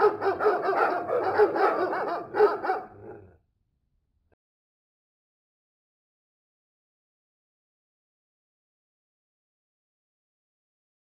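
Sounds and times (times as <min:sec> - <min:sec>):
recorded dog barking: 0:00.0 - 0:03.4.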